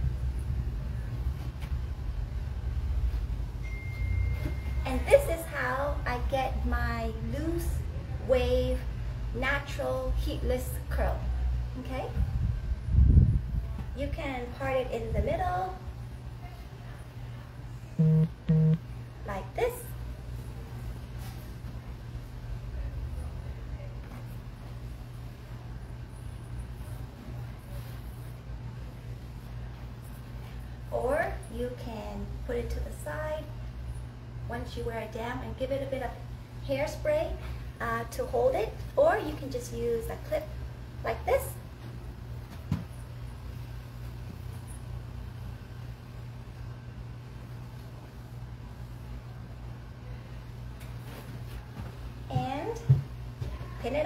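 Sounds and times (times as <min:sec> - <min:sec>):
low background hum: 0:00.0 - 0:54.0
short low electronic beeps: 0:18.0 - 0:18.8.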